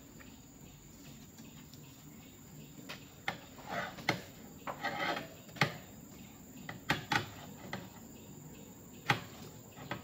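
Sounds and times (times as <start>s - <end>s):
high insect drone: 0.0s - 10.0s.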